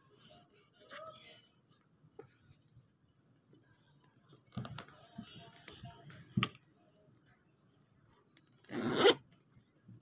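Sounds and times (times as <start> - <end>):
metal zipper pulled open: 8.7 - 9.2.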